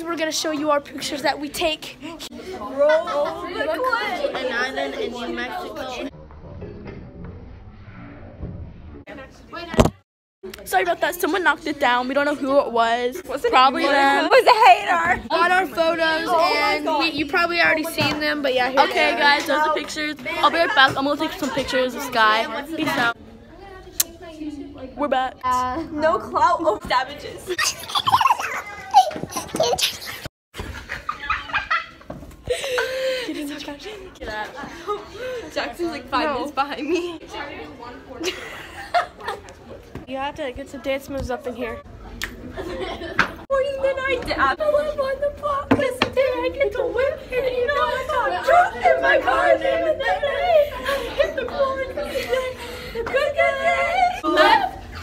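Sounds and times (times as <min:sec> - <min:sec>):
young people chattering: 0:00.0 - 0:06.2, 0:09.1 - 0:30.2, 0:30.8 - 0:55.0.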